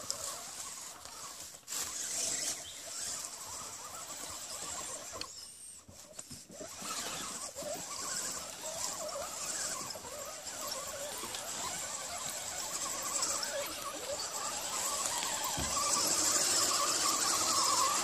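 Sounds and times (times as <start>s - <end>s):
rc car electric motors whining: 0.0s - 18.0s.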